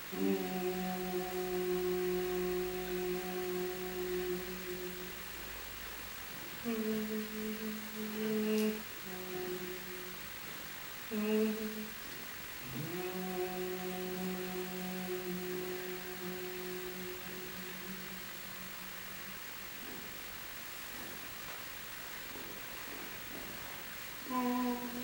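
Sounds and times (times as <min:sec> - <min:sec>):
woman humming low notes: 0:00.0 - 0:21.2, 0:24.2 - 0:25.0.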